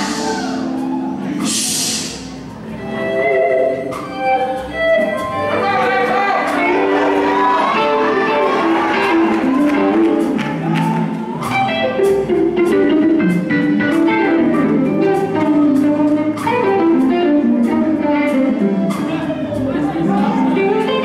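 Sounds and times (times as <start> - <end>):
gospel band music: 0.0 - 21.0.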